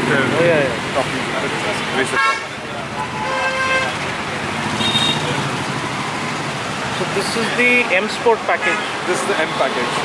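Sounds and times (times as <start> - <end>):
street traffic noise: 0.0 - 10.0
vehicle horn honking: 2.1 - 4.0, 4.7 - 5.4.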